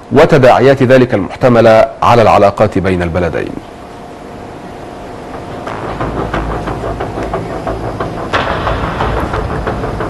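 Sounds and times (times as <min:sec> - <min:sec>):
loud burst of noise: 0:04.5 - 0:10.0
steady low rumble: 0:04.5 - 0:10.0.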